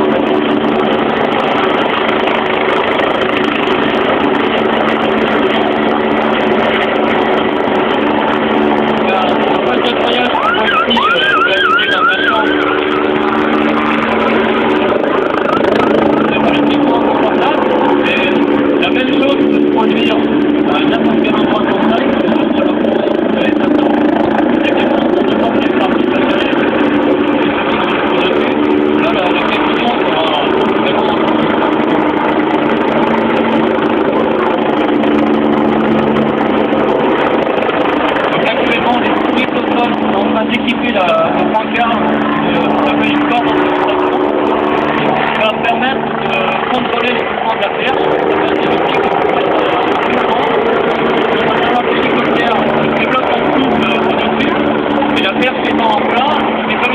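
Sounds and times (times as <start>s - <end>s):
helicopter flying overhead: 0.0s - 56.9s
voices: 0.0s - 56.9s.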